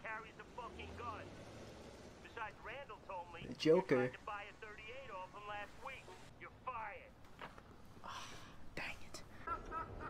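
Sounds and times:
whispered breathy voice: 0:08.0 - 0:09.4.

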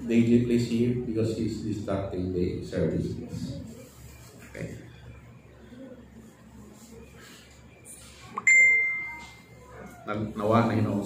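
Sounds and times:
bell-like ding: 0:08.4 - 0:09.4.

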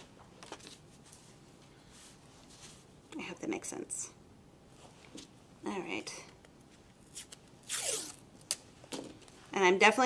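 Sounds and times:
masking tape pulled off roll: 0:07.0 - 0:08.6.

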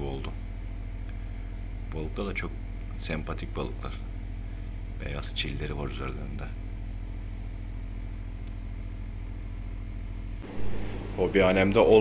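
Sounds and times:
aquarium air pump humming: 0:00.0 - 0:12.0.

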